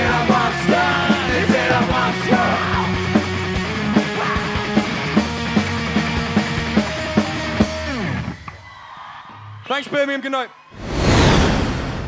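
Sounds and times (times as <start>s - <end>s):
rock band playing live: 0.0s - 8.4s.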